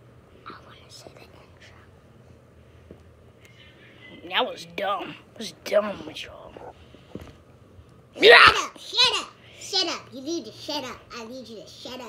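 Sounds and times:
child whispering: 0.4 - 1.9.

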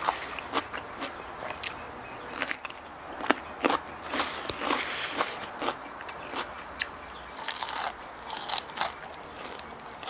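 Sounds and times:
person biting and chewing: 2.4 - 9.6.

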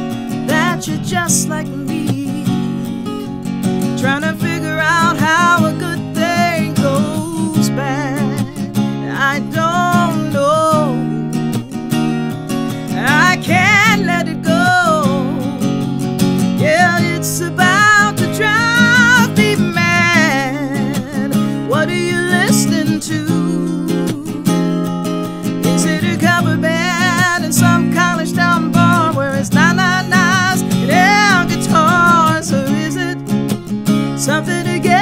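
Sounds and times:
woman singing with vibrato: 0.0 - 3.1, 4.0 - 11.8, 12.9 - 15.8, 16.6 - 25.0, 25.6 - 33.2, 34.2 - 35.0
acoustic guitar strumming: 0.0 - 35.0.

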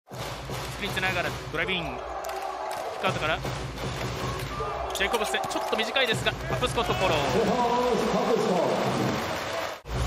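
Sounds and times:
commentator talking: 4.9 - 9.1.

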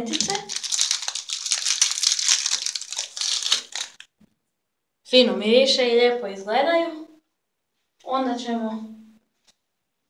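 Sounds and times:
foil wrappers crinkling and tearing: 0.0 - 4.0.

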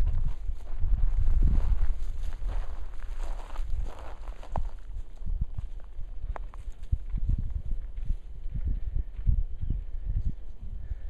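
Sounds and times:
footsteps on dry ground: 0.0 - 11.0
low rumble on microphone: 0.0 - 11.0.

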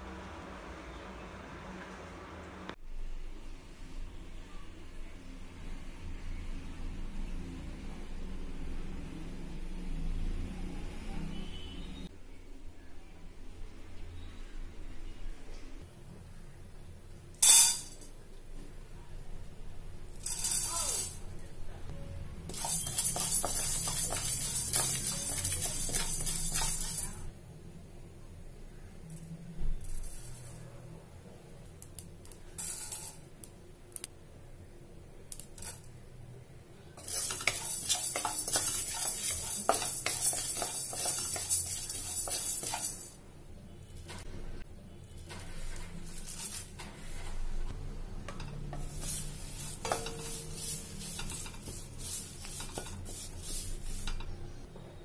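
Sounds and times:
dry grains dropping into metal pan: 17.4 - 18.1, 20.2 - 21.2, 22.5 - 27.3, 29.8 - 30.6, 31.8 - 33.3, 35.3 - 35.9, 37.0 - 43.2, 45.2 - 46.9, 48.3 - 54.3
spoon tapping metal pan: 22.5 - 27.2, 37.0 - 43.2, 48.3 - 54.4
grains rattling and scraping: 22.5 - 27.3, 37.0 - 43.2, 45.2 - 47.3, 48.7 - 54.2.

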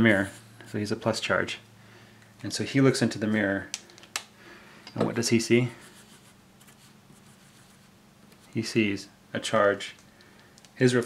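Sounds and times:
low steady hum: 0.0 - 11.0
marker strokes on paper: 5.7 - 8.6.

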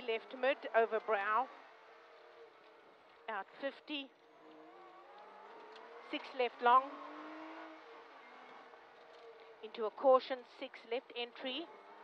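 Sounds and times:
rally car engine accelerating: 0.0 - 9.8, 11.4 - 12.0.

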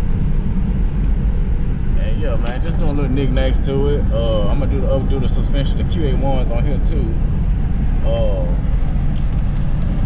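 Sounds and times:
car engine and road noise: 0.0 - 10.0.

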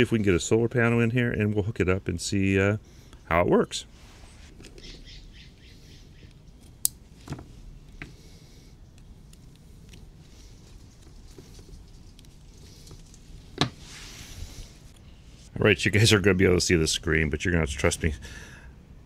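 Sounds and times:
faint steady hiss: 0.0 - 19.0
cable handling: 8.9 - 15.0.

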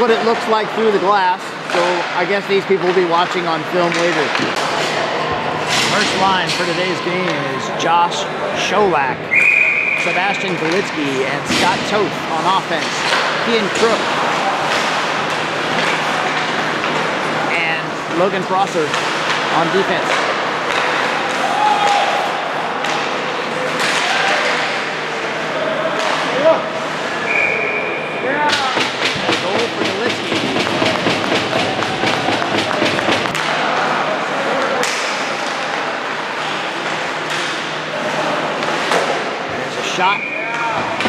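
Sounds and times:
voices of players and spectators: 0.0 - 41.0
referee's whistle: 9.3 - 10.4, 27.3 - 28.2, 40.1 - 40.5
crowd clapping and knocking: 28.6 - 33.6
skates and sticks on ice: 28.6 - 33.6.

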